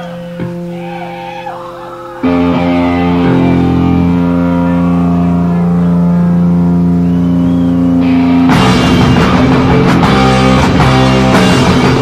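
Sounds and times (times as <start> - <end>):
distorted guitar and bass drone: 0.0 - 12.0.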